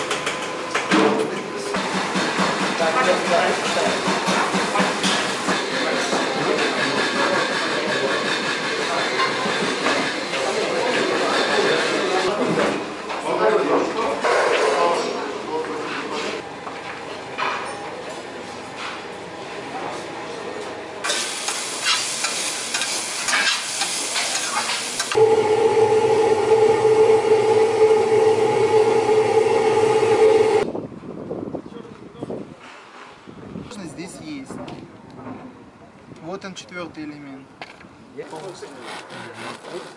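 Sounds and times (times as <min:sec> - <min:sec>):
machine hum with mid-pitched tone: 0:25.1 - 0:30.7
background voices: 0:25.2 - 0:30.6.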